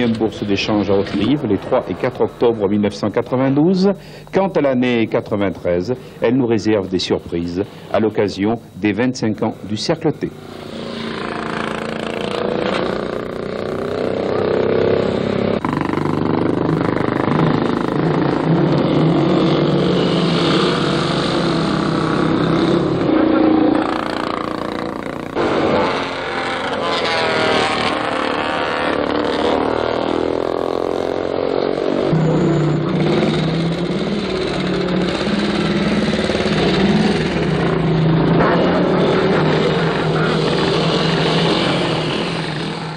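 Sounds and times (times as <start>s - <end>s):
motorcycle engines passing: 0.0s - 5.9s, 9.7s - 42.9s.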